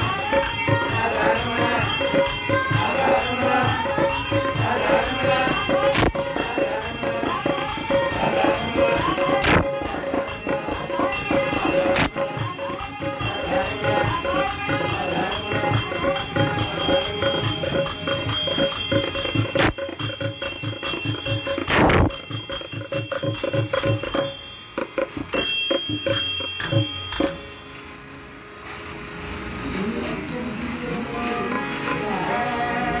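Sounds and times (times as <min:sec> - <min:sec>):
voices: 0:00.0 - 0:21.6, 0:29.5 - 0:33.0
small hand cymbals ringing: 0:00.0 - 0:27.9.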